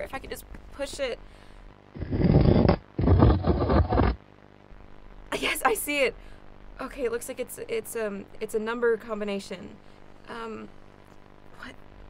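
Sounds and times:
furniture scraping across floor: 2.0 - 4.2.

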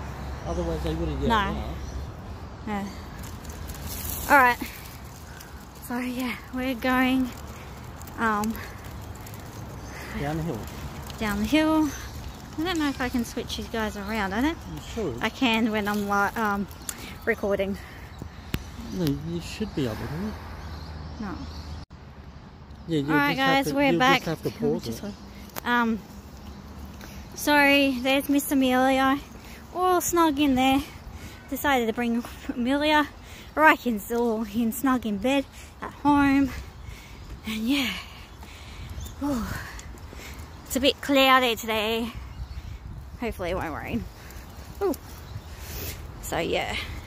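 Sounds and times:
pram rolling on paved path: 0.0 - 47.0
woman's voice: 2.6 - 3.0, 4.3 - 4.8, 5.8 - 7.4, 8.1 - 8.7, 11.2 - 14.6, 23.1 - 24.4, 25.6 - 26.0, 27.4 - 36.6, 37.4 - 38.2, 40.7 - 42.2, 43.2 - 44.1, 46.2 - 47.0.

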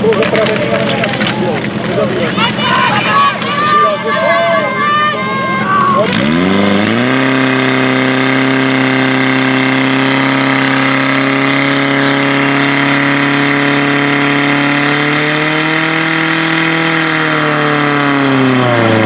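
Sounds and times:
fire pump engine running hard: 0.0 - 19.0
person shouting: 2.4 - 6.2.

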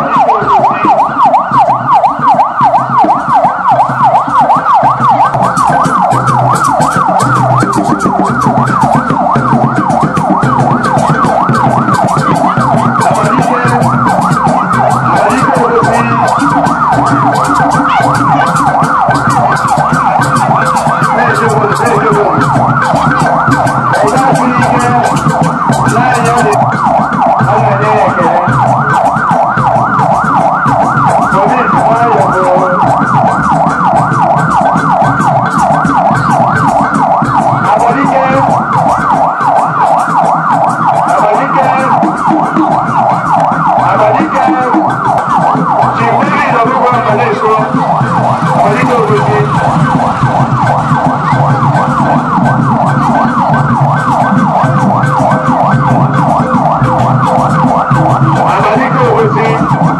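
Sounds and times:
electronic siren yelping: 0.0 - 59.9.

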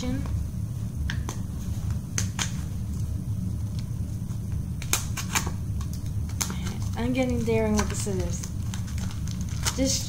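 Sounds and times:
steady low hum: 0.0 - 10.0
plastic packaging clicks and snaps: 4.8 - 9.9.

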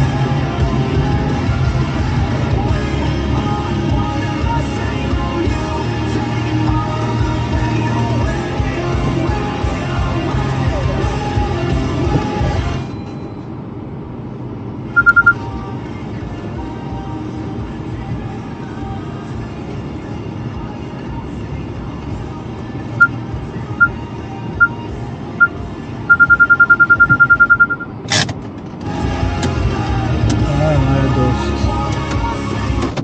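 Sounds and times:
car cabin hum: 11.0 - 12.7, 23.0 - 28.2
high-pitched electronic beeps: 15.0 - 15.5, 23.8 - 24.0, 24.6 - 28.0.

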